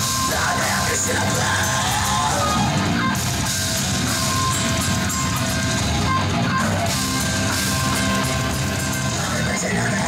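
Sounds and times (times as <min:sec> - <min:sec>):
harsh shouted vocals: 0:00.0 - 0:03.3
bass guitar: 0:00.0 - 0:10.0
distorted electric guitar: 0:00.0 - 0:10.0
drums: 0:00.0 - 0:10.0.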